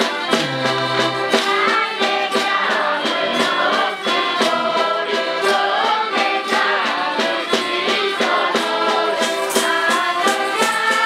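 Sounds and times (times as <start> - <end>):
accordions: 0.0 - 11.0
melodica: 0.0 - 11.0
group of voices singing in chorus: 0.2 - 11.0
snare drum beat: 0.3 - 11.0.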